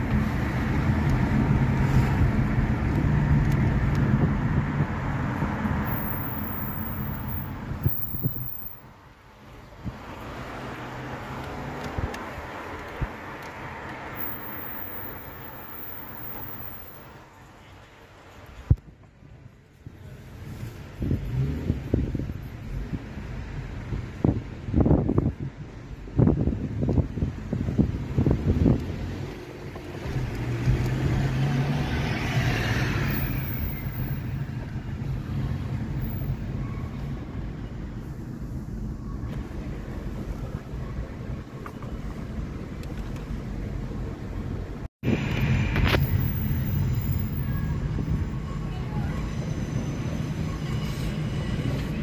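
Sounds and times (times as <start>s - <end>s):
road noise inside a car: 0.0s - 52.0s.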